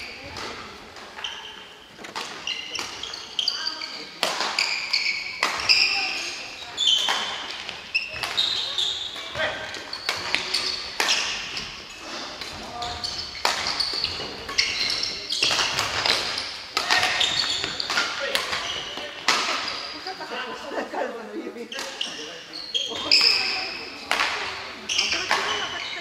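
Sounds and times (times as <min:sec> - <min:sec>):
shoes squeaking on wooden floor: 0:00.0 - 0:20.3, 0:21.7 - 0:24.0, 0:24.6 - 0:26.0
voices in background: 0:00.0 - 0:26.0
racket hitting shuttlecock: 0:04.2 - 0:06.0, 0:07.0 - 0:19.7, 0:23.0 - 0:25.7.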